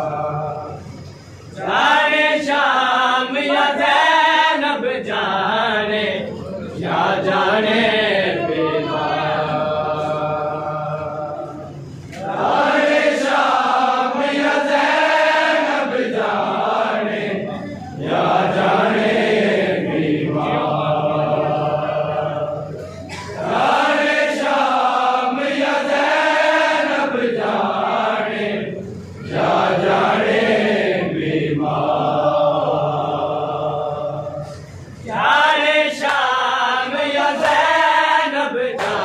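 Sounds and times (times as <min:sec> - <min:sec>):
men chanting a mourning lament: 0:00.0 - 0:39.0.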